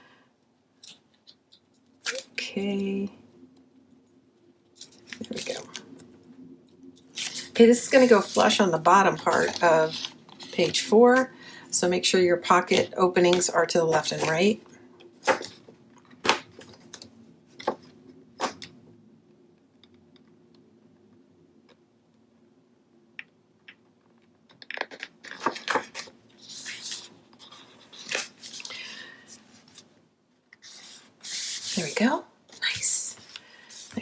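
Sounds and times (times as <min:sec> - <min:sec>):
paper rustling and crinkling: 0:04.8 - 0:05.8, 0:07.1 - 0:11.3, 0:24.7 - 0:29.9.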